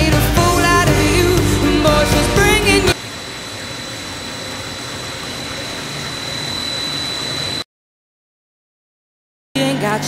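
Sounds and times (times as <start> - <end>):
pop song with woman singing: 0.0 - 3.0, 9.6 - 10.0
thin high machine whine: 1.6 - 7.7.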